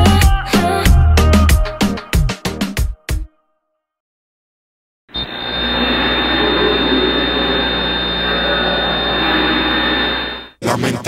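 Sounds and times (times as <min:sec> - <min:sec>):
music beat: 0:00.0 - 0:03.2
noisy drone with high whine: 0:05.1 - 0:10.6
low hum: 0:05.2 - 0:10.5.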